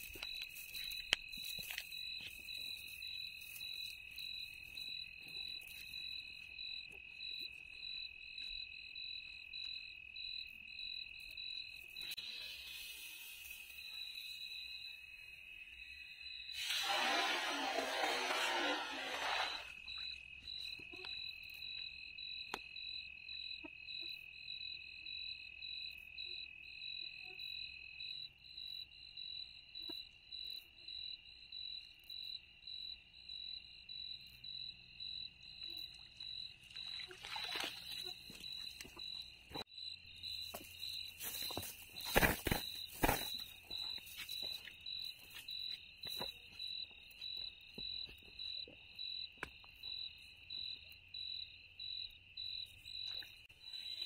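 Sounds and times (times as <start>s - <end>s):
night insects chirping: 0.0s - 54.0s
net splashing into water: 36.8s - 38.1s.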